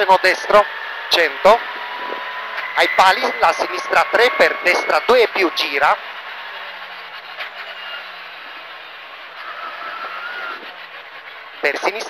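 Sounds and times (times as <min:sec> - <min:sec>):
engine decelerating: 0:00.0 - 0:12.0
thin whine: 0:00.0 - 0:12.0
tyre and road rumble: 0:00.0 - 0:12.0.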